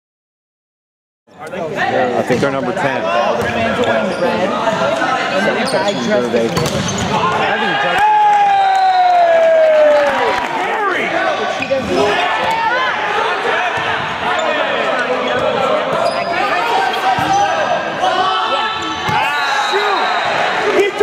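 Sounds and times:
chatter of many voices: 1.3s - 8.1s, 10.1s - 21.0s.

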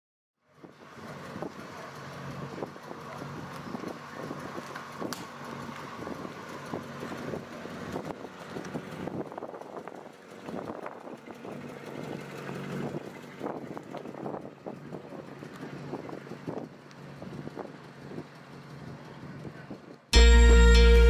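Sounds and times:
car engine running at low speed: 0.4s - 21.0s
wind noise on microphone: 6.0s - 11.6s, 12.8s - 15.2s.

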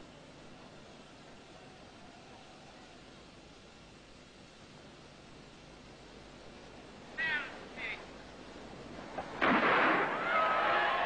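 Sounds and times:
old film hiss: 0.0s - 11.0s
starting pistol shot: 9.4s - 10.3s
crowd roaring: 10.0s - 11.0s.

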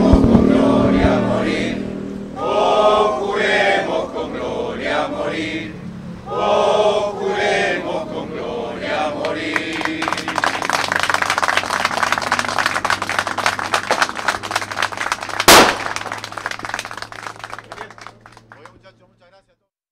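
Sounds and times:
loud sharp bang: 0.0s - 1.8s, 15.5s - 16.2s
group of people singing: 0.0s - 10.8s
crowd clapping and applauding: 9.4s - 19.0s.

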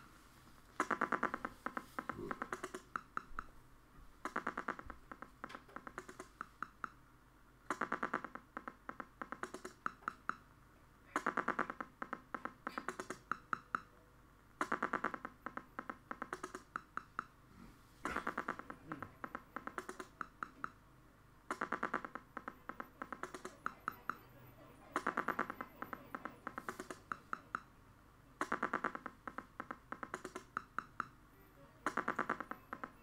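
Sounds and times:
electronic rhythm of clicks and ticks: 0.8s - 3.6s, 4.2s - 7.0s, 7.6s - 10.5s, 11.1s - 14.0s, 14.6s - 17.4s, 18.0s - 20.9s, 21.5s - 27.8s, 28.4s - 33.0s.

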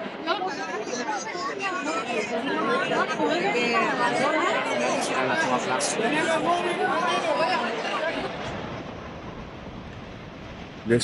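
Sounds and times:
crowd chatter: 0.0s - 10.2s.

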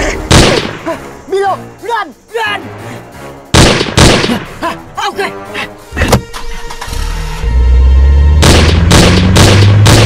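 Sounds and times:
dramatic film music: 0.0s - 10.0s
car engine revving: 6.6s - 10.0s
sharp hit: 8.4s - 10.0s.

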